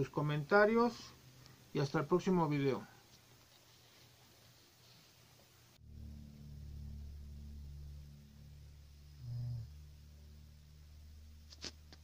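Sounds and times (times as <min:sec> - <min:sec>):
low steady hum: 0:00.0 - 0:12.0
short low-pitched tone: 0:05.8 - 0:11.4.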